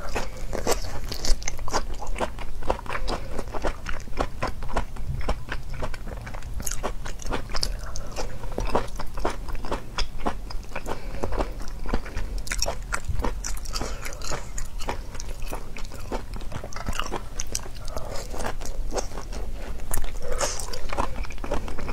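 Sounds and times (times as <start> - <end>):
chewing crunchy shellfish: 0.0 - 21.9.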